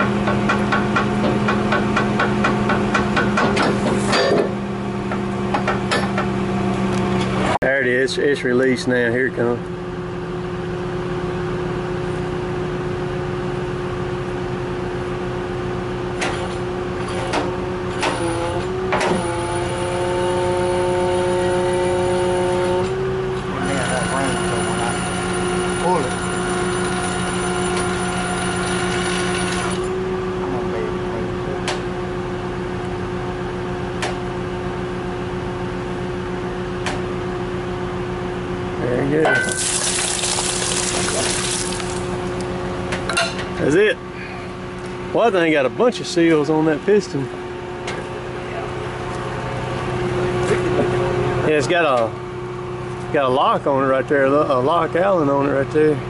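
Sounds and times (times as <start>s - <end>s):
diesel engine running: 0.0s - 56.0s
hydraulics working: 39.2s - 49.4s.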